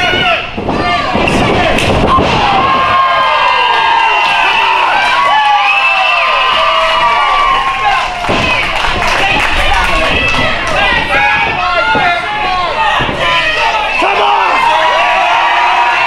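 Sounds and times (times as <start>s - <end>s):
audience yelling and cheering: 0.0s - 16.0s.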